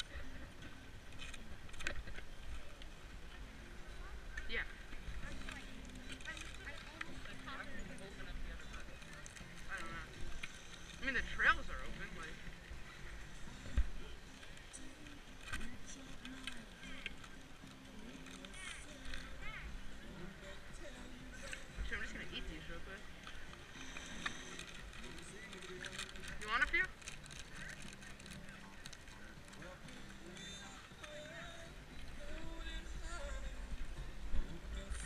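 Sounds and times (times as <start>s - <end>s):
people chattering: 0.0s - 35.0s
foil wrapper rustling: 23.8s - 29.7s.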